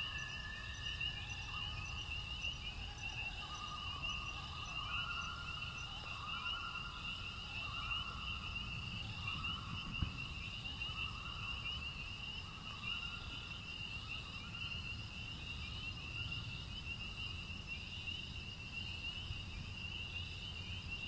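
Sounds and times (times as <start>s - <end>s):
insects trilling: 0.0s - 21.0s.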